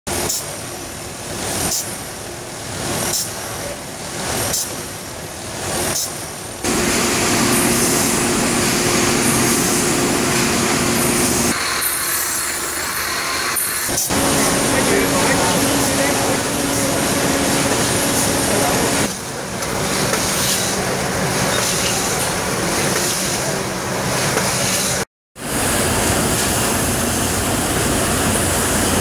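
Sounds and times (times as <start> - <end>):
machine whirring with low hum: 6.6 - 29.0.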